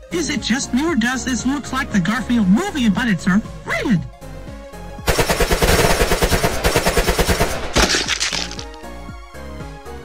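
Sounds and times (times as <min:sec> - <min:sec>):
background music: 0:00.0 - 0:10.0
cartoon automatic rifle fire: 0:05.1 - 0:08.5.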